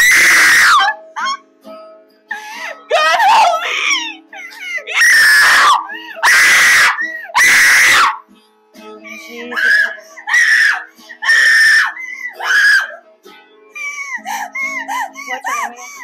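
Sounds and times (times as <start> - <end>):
person screaming: 0.0 - 1.3, 2.9 - 4.1, 4.9 - 8.2, 9.6 - 12.9
soft acoustic guitar: 0.8 - 5.0, 5.7 - 6.2, 8.1 - 11.2, 11.8 - 16.0.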